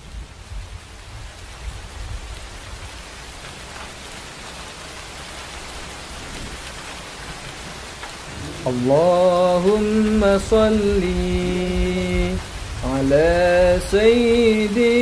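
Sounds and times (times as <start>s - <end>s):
steady rain hissing: 0.0s - 15.0s
low rumble: 8.3s - 14.7s.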